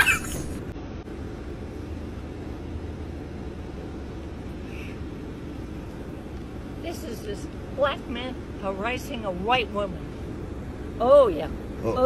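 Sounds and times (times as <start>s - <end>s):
man laughing: 0.0s - 0.6s.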